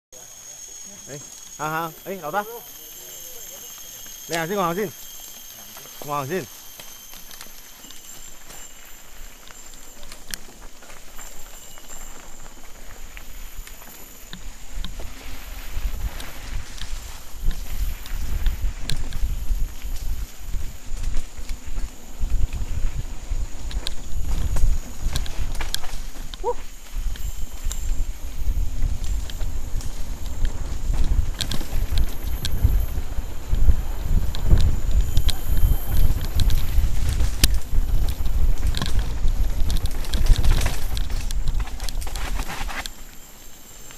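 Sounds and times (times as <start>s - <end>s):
bike tyres rolling over dirt: 0.2s - 43.9s
bike clicks and rattles: 3.4s - 43.9s
wind rumble on microphone: 11.2s - 42.9s.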